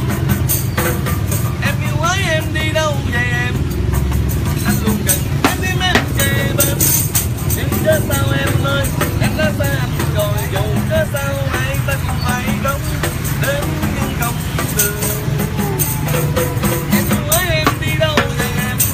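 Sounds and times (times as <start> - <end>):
backing music: 0.0 - 18.9
tambourine jingles: 0.0 - 18.9
person singing a ballad: 4.7 - 18.9.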